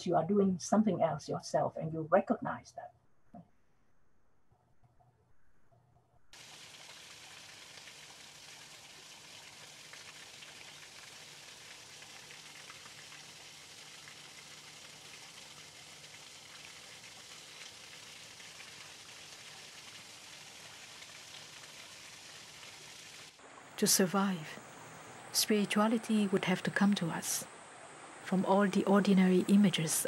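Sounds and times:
low hum: 2.5 - 6.4
rain-like hiss of water: 6.4 - 28.4.

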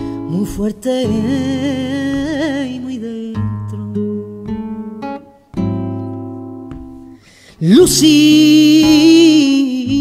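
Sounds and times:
flamenco guitar strummed: 0.0 - 10.0.

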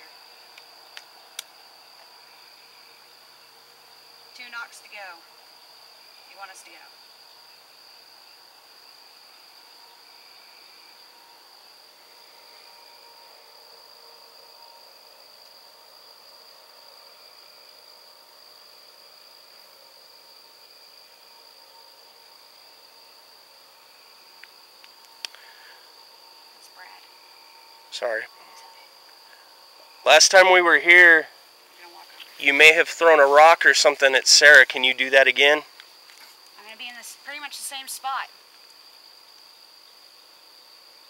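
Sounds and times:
crickets chirping: 0.0 - 41.0.

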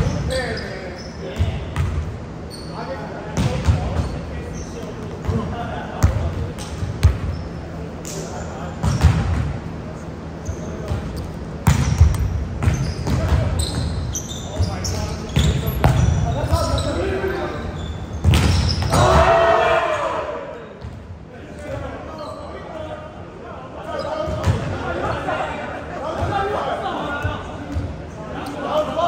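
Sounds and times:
volleyball hits echoing: 18.2 - 19.4
players calling out: 18.6 - 20.8.

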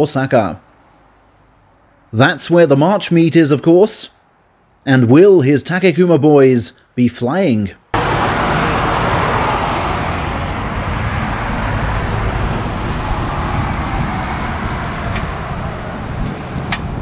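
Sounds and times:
road traffic rumble: 0.6 - 2.2, 8.0 - 17.0.

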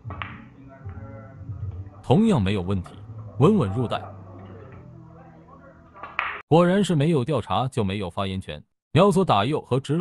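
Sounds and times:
background music: 0.0 - 7.1.

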